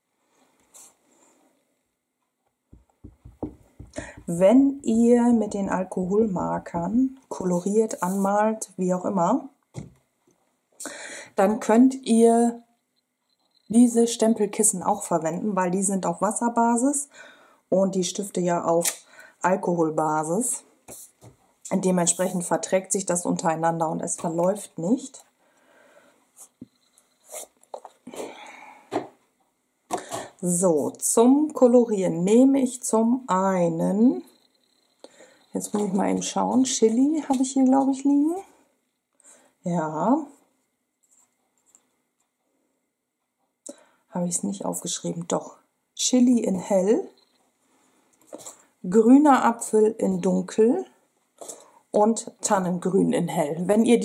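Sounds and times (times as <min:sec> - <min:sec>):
stamp tapping on ink pad: 0:02.7 - 0:04.0
plastic case clicks and knocks: 0:02.8 - 0:04.0
soft rustle: 0:26.3 - 0:28.4.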